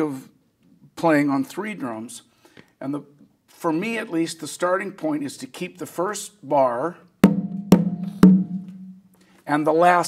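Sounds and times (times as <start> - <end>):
conga drum strokes: 7.2 - 9.1.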